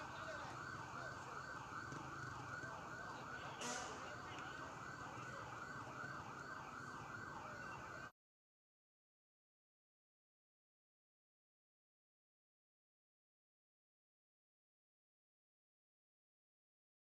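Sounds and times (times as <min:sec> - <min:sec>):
police siren warbling: 0:00.0 - 0:08.1.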